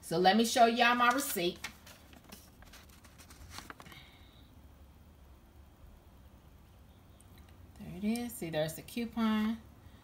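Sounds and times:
paper receipt handling rustles: 0.8 - 4.2.

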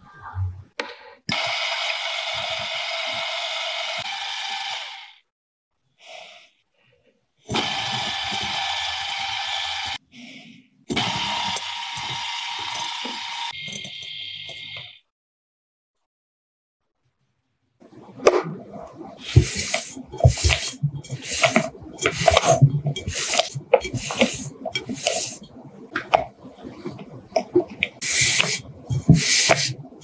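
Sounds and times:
electric hand mixer whipping: 1.3 - 5.2, 7.5 - 10.0, 10.9 - 14.8, 19.2 - 30.0.

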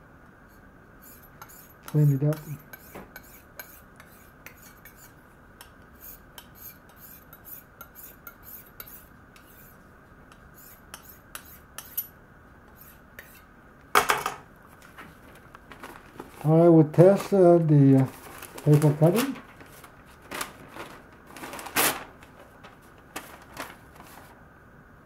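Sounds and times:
knife scraping on sharpening plate: 1.0 - 5.2, 6.0 - 9.8, 10.6 - 12.2, 12.8 - 13.5.

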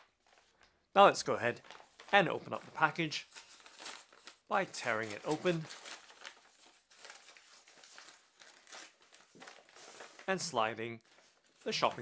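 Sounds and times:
paper envelope tearing: 1.5 - 12.0.

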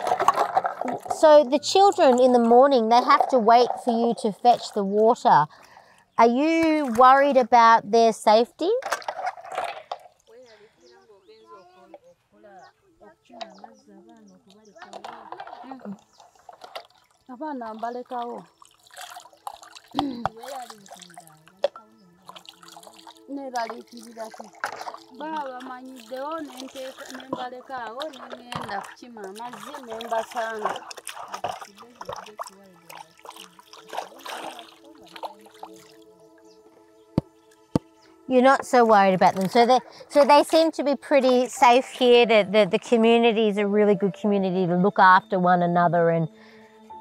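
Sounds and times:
water splashing and dripping: 0.0 - 10.4, 14.2 - 42.9
woman talking: 0.8 - 5.5, 6.2 - 8.8, 17.3 - 18.5, 23.3 - 24.6, 25.2 - 30.8, 38.3 - 46.3.

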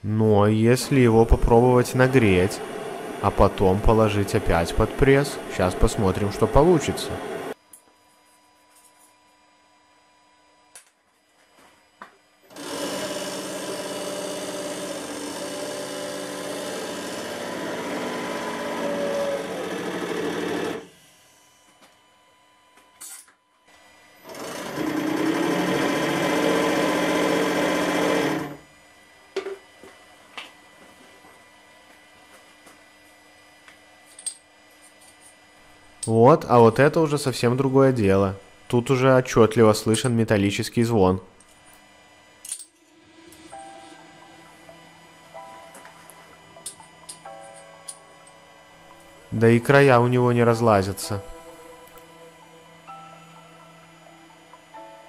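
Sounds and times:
hydraulic pump motor whirring: 1.1 - 7.6, 12.5 - 21.8, 24.2 - 28.6.

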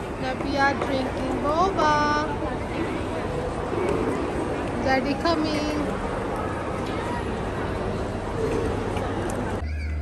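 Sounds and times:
crowd background noise: 0.0 - 10.0.

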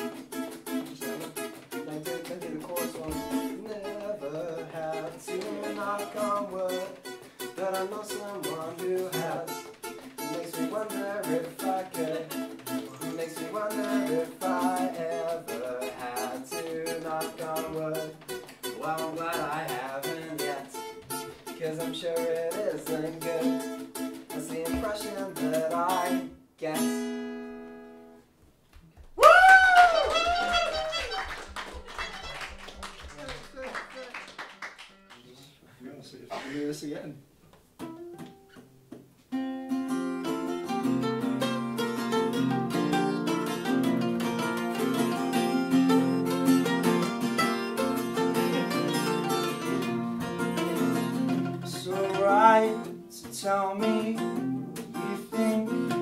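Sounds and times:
acoustic guitar duet: 0.0 - 29.1, 37.2 - 56.0.

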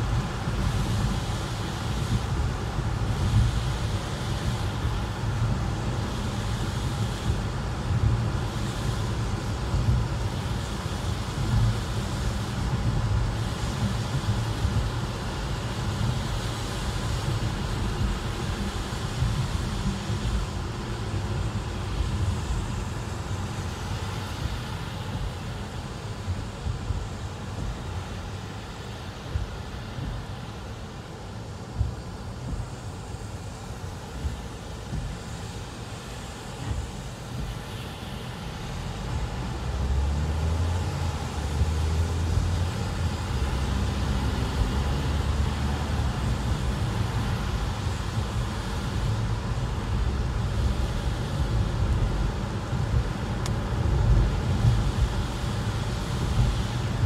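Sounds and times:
water spray hiss: 0.0 - 57.0
car road rumble: 38.2 - 57.0.

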